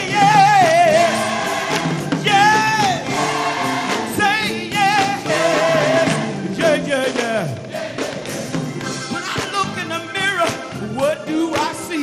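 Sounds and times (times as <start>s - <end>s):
choir singing: 0.0s - 8.8s
gospel band playing: 0.0s - 12.0s.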